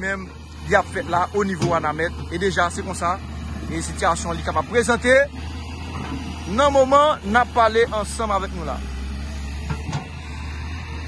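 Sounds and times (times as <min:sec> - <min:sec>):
excavator diesel engine droning: 0:00.0 - 0:11.0.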